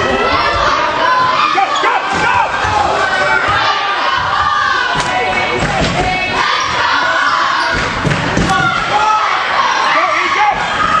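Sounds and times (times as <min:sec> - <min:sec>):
crowd shouting and voices: 0:00.0 - 0:11.0.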